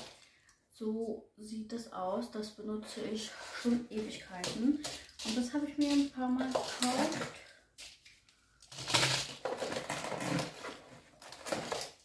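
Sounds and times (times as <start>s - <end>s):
packaging rustling and crinkling: 0.0s - 0.3s, 3.4s - 12.0s.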